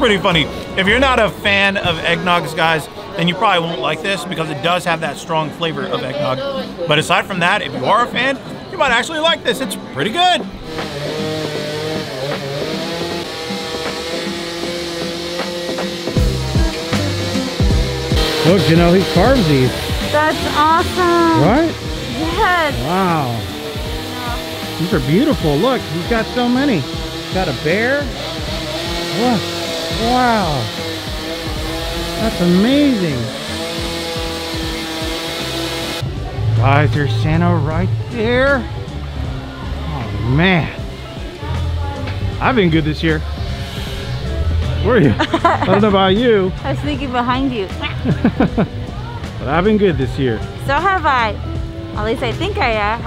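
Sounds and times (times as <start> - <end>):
chainsaw running at high revs: 10.6 - 51.6.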